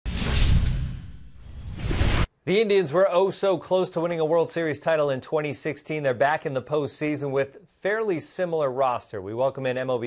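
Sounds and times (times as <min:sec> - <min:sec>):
rising whoosh: 0:00.1 - 0:02.3
whoosh with deep boom: 0:00.1 - 0:02.3.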